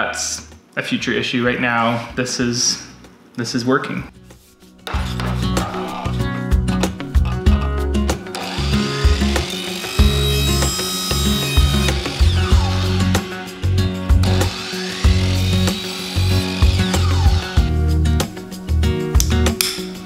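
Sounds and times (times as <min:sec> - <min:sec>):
background music with bass beat: 0:04.2 - 0:08.2
miter saw cutting pipe: 0:08.3 - 0:17.7.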